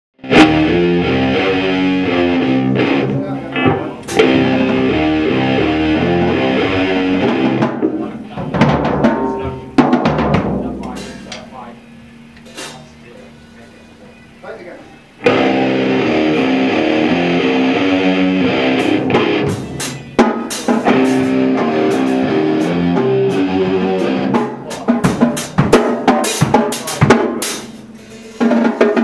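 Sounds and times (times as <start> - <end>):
electric guitar: 0.2 - 11.4, 15.2 - 25.7
bass guitar: 0.2 - 13.0, 15.2 - 28.2
drum kit with cymbals: 0.2 - 29.0.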